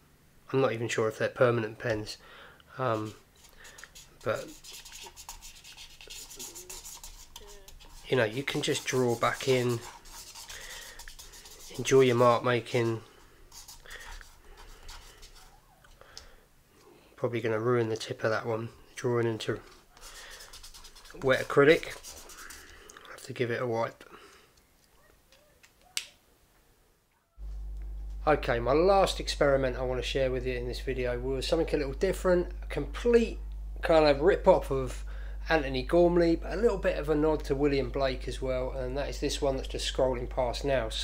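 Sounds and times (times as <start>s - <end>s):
low electrical hum: 0.0s - 41.0s
felt-tip pen scratching on paper: 3.0s - 12.2s, 20.0s - 22.7s.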